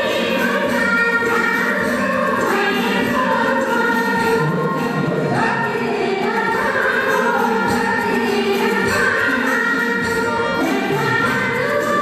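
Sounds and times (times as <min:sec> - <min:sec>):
women singing folk song: 0:00.0 - 0:12.0.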